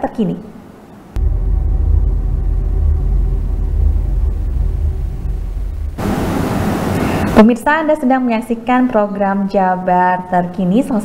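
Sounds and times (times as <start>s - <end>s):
deep rumbling bass: 1.2s - 7.4s.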